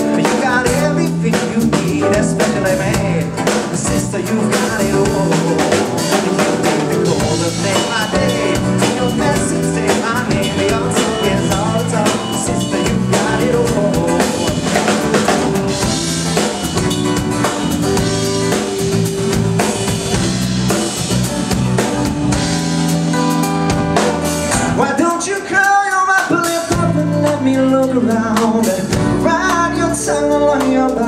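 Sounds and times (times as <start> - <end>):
person singing: 0.0 - 15.6, 24.7 - 31.0
bass guitar: 0.0 - 31.0
drum kit: 0.0 - 31.0
live band playing pop-rock: 0.0 - 31.0.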